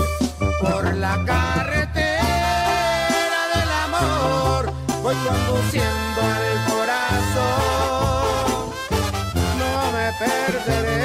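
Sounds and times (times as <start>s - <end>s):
bass line: 0.0s - 11.0s
horns playing melody: 0.0s - 11.0s.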